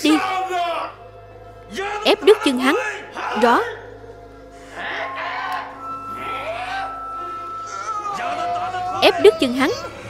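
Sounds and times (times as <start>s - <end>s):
tense background music: 0.0s - 10.0s.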